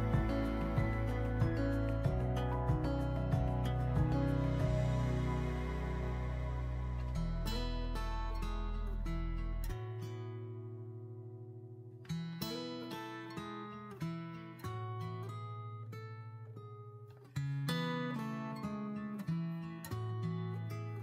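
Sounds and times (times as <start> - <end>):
acoustic guitar chords: 0.0 - 21.0.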